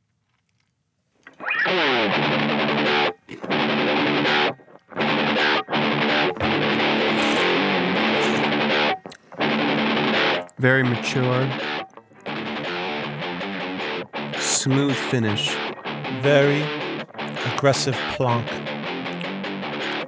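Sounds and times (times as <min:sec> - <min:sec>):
distorted electric guitar chords: 0:01.3 - 0:20.0.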